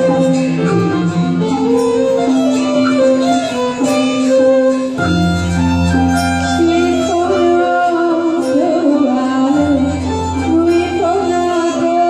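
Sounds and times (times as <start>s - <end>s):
keyboard: 0.0s - 12.0s
small live band playing: 0.0s - 12.0s
violin holding melody notes: 0.0s - 12.0s.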